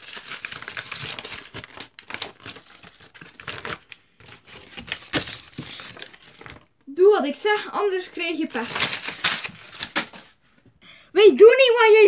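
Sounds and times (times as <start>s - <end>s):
paper being crumpled: 0.0s - 6.7s, 7.9s - 10.4s.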